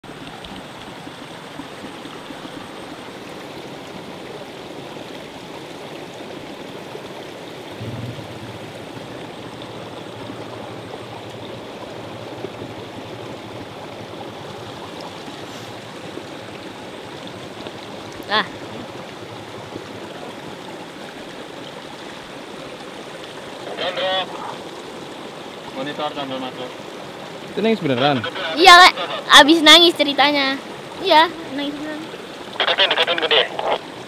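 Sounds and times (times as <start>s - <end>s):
steady rushing noise: 7.8s - 12.6s
low steady hum: 7.8s - 20.1s.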